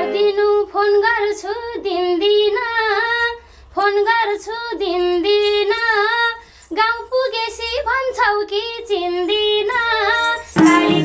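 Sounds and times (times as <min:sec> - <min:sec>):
woman singing folk melody: 0:00.0 - 0:11.0.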